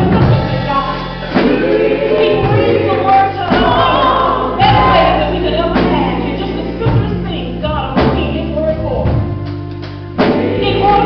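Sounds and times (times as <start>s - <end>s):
choir voices: 0.0s - 8.6s, 9.6s - 11.0s
instrumental backing: 0.0s - 11.0s
sustained low notes: 0.0s - 11.0s.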